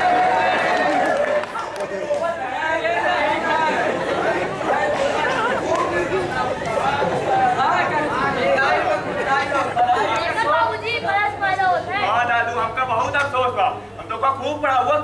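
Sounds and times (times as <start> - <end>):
people talking at once: 0.0 - 15.0.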